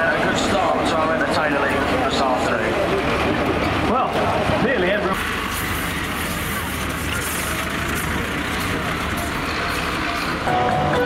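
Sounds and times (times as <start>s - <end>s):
vehicle engines running: 0.0s - 11.0s.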